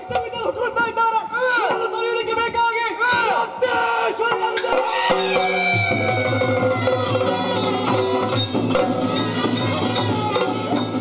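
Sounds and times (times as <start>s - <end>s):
performers' wavering war cries: 3.4s - 11.0s.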